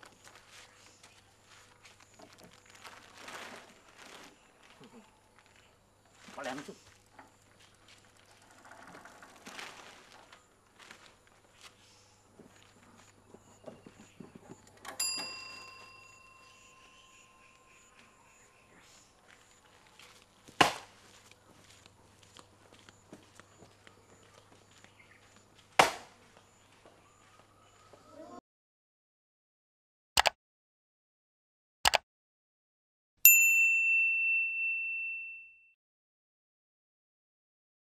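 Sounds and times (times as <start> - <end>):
metallic ding ringing: 15.0 - 17.6, 33.3 - 35.7.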